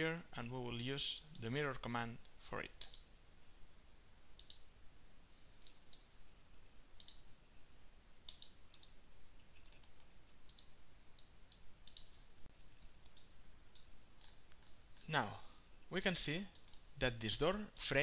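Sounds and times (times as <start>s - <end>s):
low background hiss: 0.0s - 18.0s
computer mouse buttons clicking: 2.8s - 3.1s, 4.4s - 4.7s, 7.0s - 7.3s, 8.3s - 9.0s, 9.6s - 12.2s, 12.8s - 14.8s, 16.5s - 16.8s.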